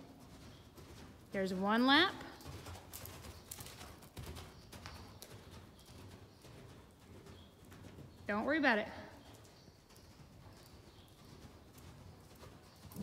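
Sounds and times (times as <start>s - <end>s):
horse hoofbeats on soft dirt: 0.0s - 13.0s.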